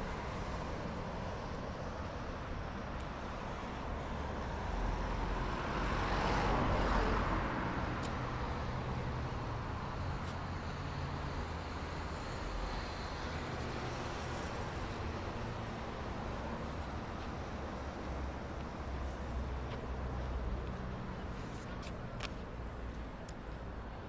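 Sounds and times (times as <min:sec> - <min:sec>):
road traffic engine hum: 0:00.0 - 0:24.0.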